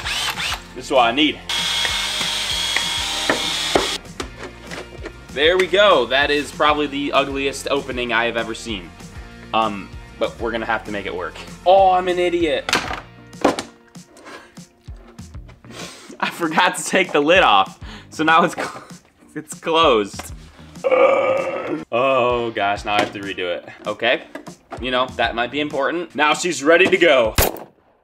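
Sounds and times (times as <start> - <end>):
cordless drill whining: 0.0 - 0.7, 1.5 - 4.0
soft background music: 0.0 - 27.5
plastic jug knocks and rubbing: 12.7 - 13.8, 22.9 - 23.3.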